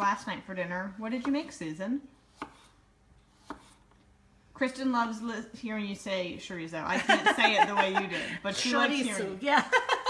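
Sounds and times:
knife slicing on cutting board: 0:02.3 - 0:03.9.

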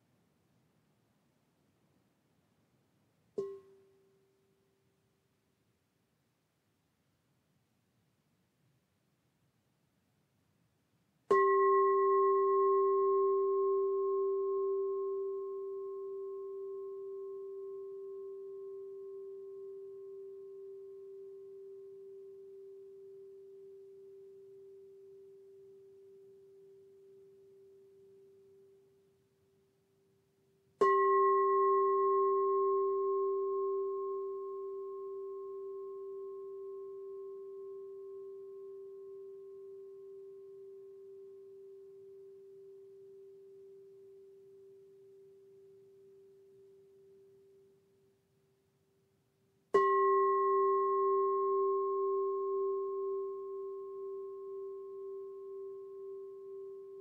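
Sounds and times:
mallet striking singing bowl: 0:03.4 - 0:03.8, 0:11.3 - 0:16.0
singing bowl ringing: 0:11.3 - 0:29.2, 0:30.8 - 0:47.8, 0:49.7 - 0:57.0.

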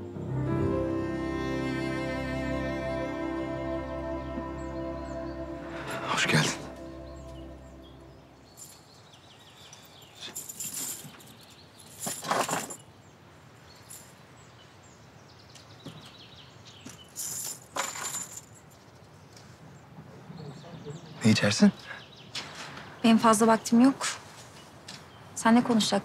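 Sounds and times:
background music: 0:00.0 - 0:08.7
outdoor ambience: 0:00.0 - 0:26.0.

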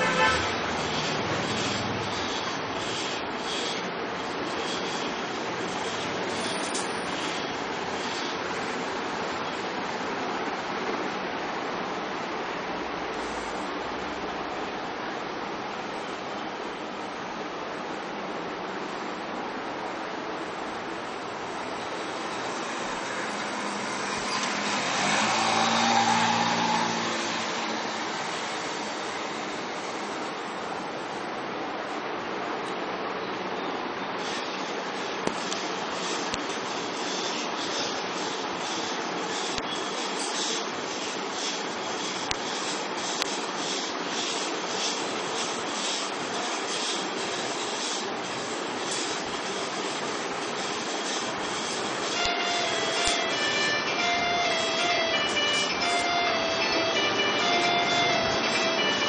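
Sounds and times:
drying rack rasping on pulleys: 0:00.0 - 0:09.4, 0:21.1 - 0:30.9, 0:34.2 - 0:59.0
steady hiss: 0:00.0 - 0:59.0.

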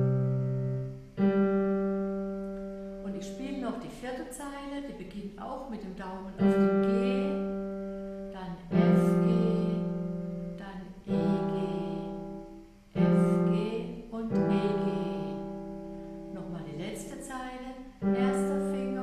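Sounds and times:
digital piano chords: 0:00.0 - 0:03.8, 0:06.4 - 0:19.0.

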